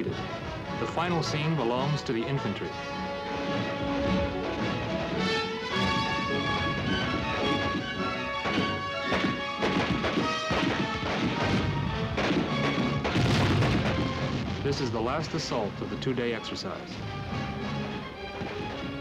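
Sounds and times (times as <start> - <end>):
film music with held notes: 0.0 - 19.0
explosion blasts: 6.7 - 15.7
rifle fire: 7.6 - 15.0.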